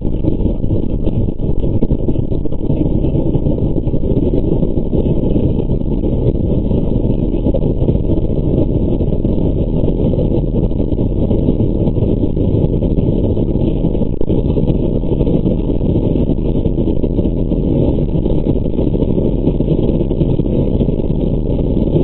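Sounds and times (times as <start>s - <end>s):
aircraft engine and airflow noise: 0.0s - 22.0s.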